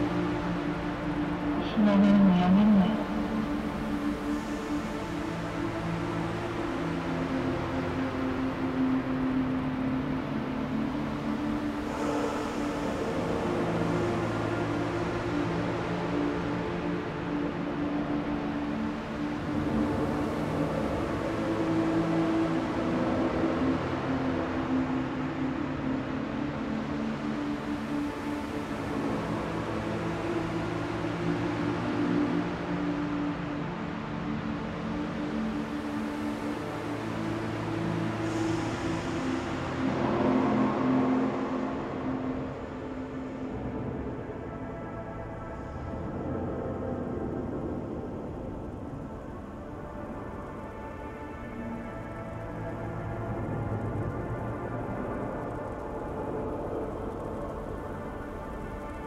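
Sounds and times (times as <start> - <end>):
low synth drones: 0.0 - 59.0.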